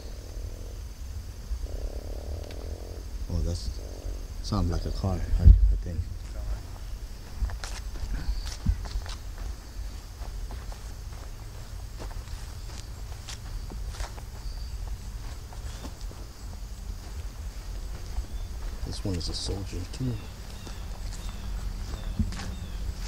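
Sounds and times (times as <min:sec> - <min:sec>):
crickets chirring: 0:00.0 - 0:23.0
footsteps through grass: 0:05.7 - 0:23.0.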